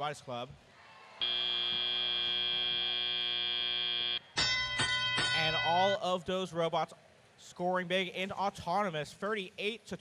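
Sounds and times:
long steady buzzer: 1.2s - 4.2s.

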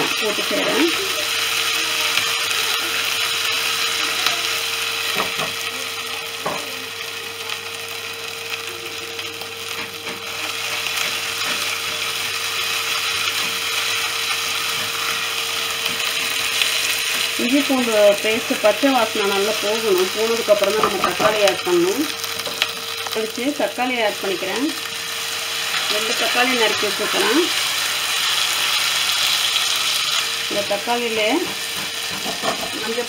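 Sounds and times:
food sizzling in a hot pan: 0.0s - 33.0s.

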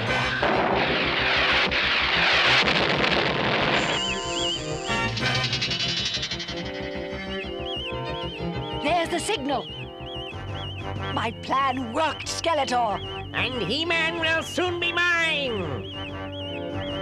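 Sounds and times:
music: 0.0s - 2.8s, 3.7s - 17.0s
cannon blast: 0.0s - 5.8s
wavering high electronic tone: 3.7s - 17.0s.

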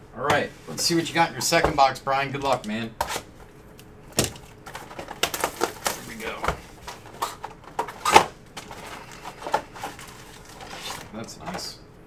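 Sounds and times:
plastic wrap and cardboard crinkling: 4.2s - 11.7s
foil packs sliding out of box: 8.0s - 11.1s.

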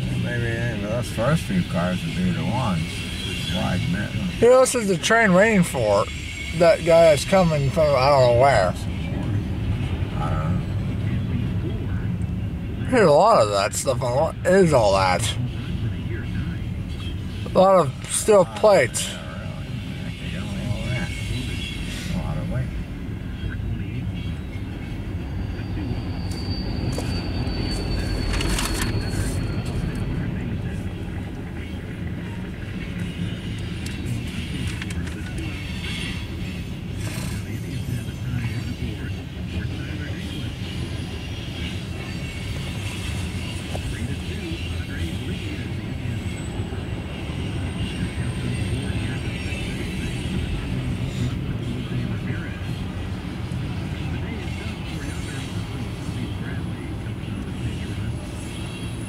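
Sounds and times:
high wheel squeal: 0.0s - 11.2s, 12.9s - 23.4s, 24.0s - 34.8s, 35.4s - 56.9s.

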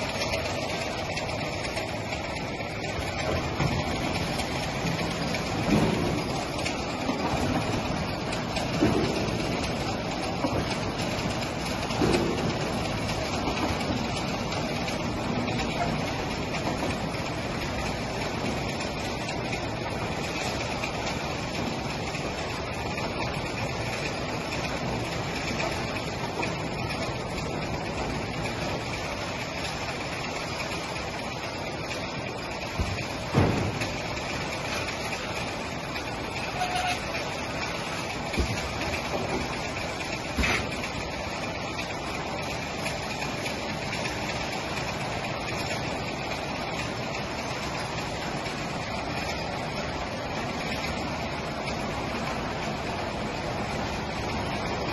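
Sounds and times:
conveyor machine mechanical noise: 0.0s - 54.9s.

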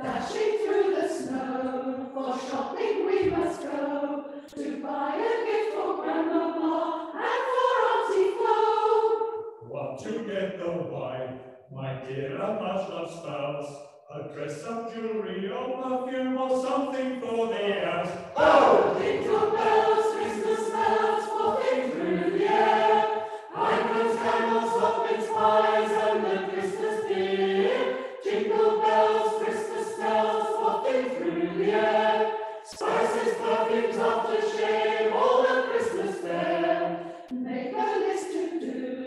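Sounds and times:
church choir singing: 0.0s - 9.6s, 14.4s - 39.0s.

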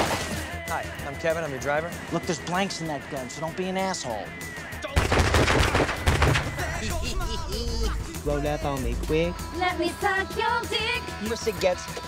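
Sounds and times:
rapid gunfire burst: 5.0s - 6.8s.

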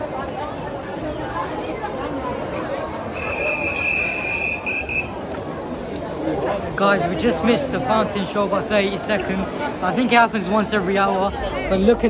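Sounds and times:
crowd babble: 0.0s - 12.0s
whistle long high note: 3.1s - 5.2s.

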